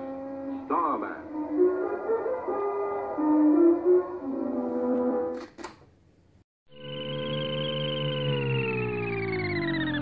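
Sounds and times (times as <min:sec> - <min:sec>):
electronic tone gliding downward: 0:06.7 - 0:10.0.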